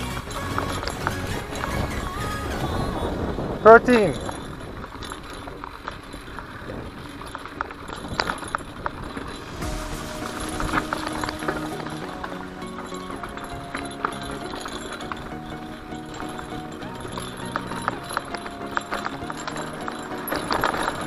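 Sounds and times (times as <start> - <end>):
background music: 0.0 - 4.4, 9.3 - 21.0
bike clicking and rattling: 0.0 - 21.0
bike tyres on dirt trail: 0.0 - 21.0.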